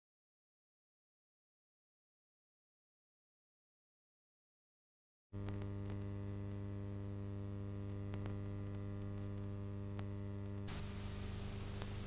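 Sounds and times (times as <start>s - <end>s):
electrical mains hum: 5.4s - 12.0s
tape hiss: 5.4s - 12.0s
faint clicks: 11.5s - 12.0s.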